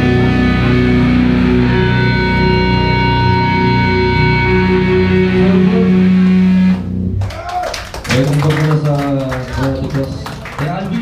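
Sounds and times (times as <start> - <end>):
distorted guitars and bass chord: 0.0 - 7.4
person shouting: 7.2 - 7.8.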